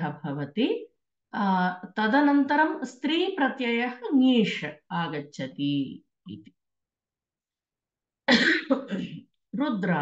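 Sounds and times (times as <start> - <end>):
person coughing: 8.3 - 9.2.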